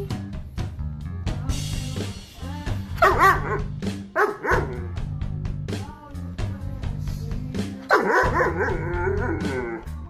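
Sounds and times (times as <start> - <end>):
background music: 0.0 - 10.0
dog barking: 3.0 - 4.8, 7.9 - 9.3.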